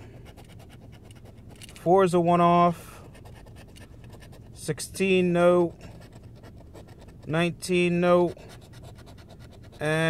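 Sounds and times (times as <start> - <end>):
lottery ticket being scratched: 3.0 - 10.0.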